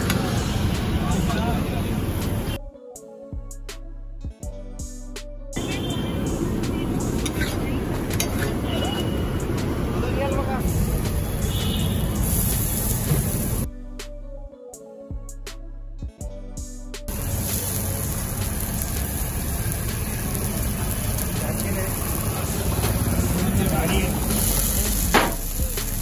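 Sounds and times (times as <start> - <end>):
low traffic rumble: 0.0 - 2.6, 5.6 - 13.7, 17.1 - 26.0
metal spatula scraping iron griddle: 7.2 - 9.0
food sizzling on a griddle: 10.2 - 13.7, 17.1 - 26.0
continuous low rumble: 17.1 - 26.0.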